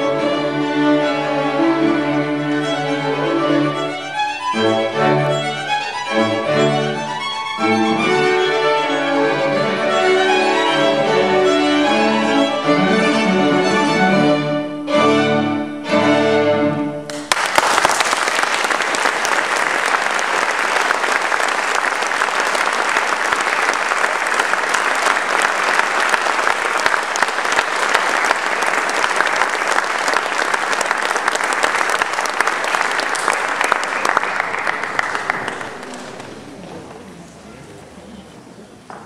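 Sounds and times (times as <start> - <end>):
string quartet chord: 0.0 - 17.1
audience applauding: 17.1 - 37.0.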